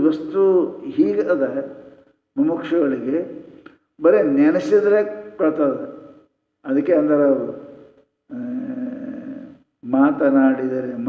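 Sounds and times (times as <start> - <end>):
man holding a vocal sound: 8.3 - 9.6.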